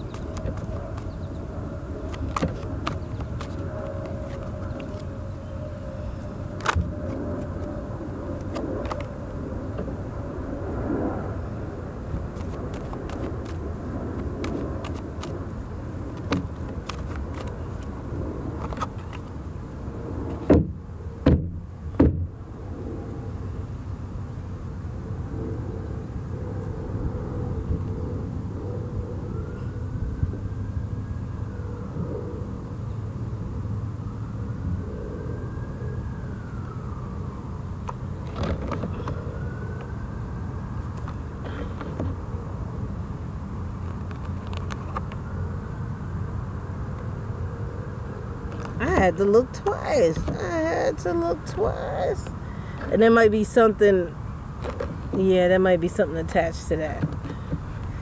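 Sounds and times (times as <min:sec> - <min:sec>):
outdoor background rumble: 0:00.0 - 0:58.0
cards being shuffled: 0:02.1 - 0:05.1, 0:12.3 - 0:13.6, 0:14.2 - 0:15.4, 0:16.1 - 0:17.9.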